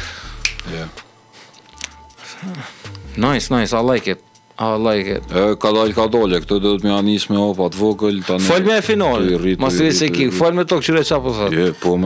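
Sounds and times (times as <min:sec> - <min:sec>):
murmured voice: 0:08.2 - 0:10.7.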